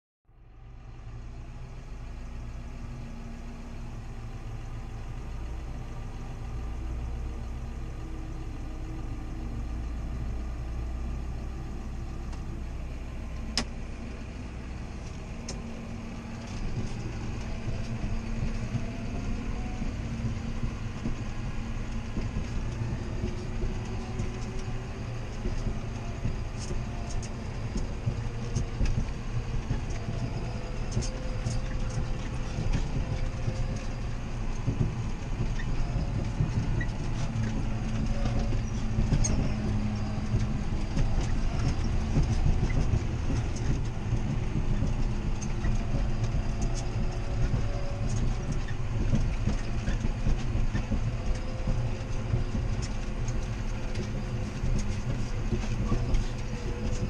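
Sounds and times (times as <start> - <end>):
tractor diesel engine running: 0.3 - 57.0
rattles and knocks: 7.0 - 57.0.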